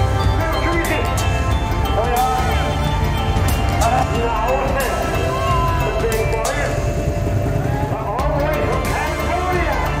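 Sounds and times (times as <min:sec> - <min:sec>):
crowd voices: 0:00.0 - 0:10.0
music: 0:00.0 - 0:10.0.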